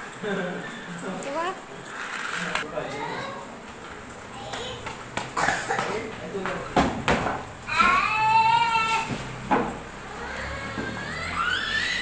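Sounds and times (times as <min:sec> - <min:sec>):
toddler squealing: 0:07.7 - 0:09.1, 0:10.1 - 0:12.0.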